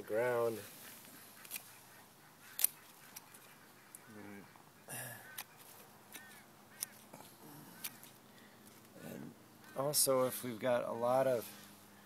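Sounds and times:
hand pruners snipping stem: 2.5s - 3.3s.

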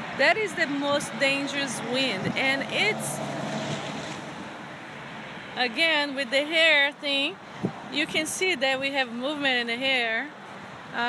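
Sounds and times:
wind rushing across microphone: 0.0s - 5.6s, 6.6s - 9.1s.

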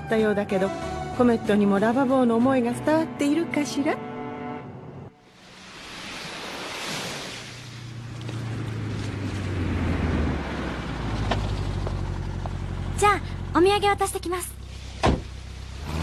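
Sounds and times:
waves washing onto beach: 5.2s - 10.1s
car engine humming: 7.4s - 16.0s.

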